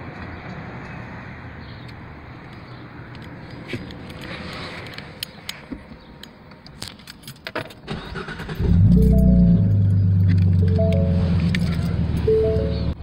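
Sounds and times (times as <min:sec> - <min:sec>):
car engine starting and idling: 0:07.9 - 0:13.0
two-note chime: 0:08.9 - 0:09.8, 0:10.6 - 0:12.9.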